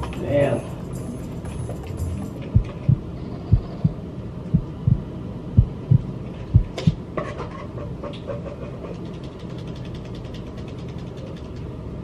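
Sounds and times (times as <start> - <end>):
faint low hum: 0.0 - 7.1
heartbeat thumps: 2.5 - 7.0.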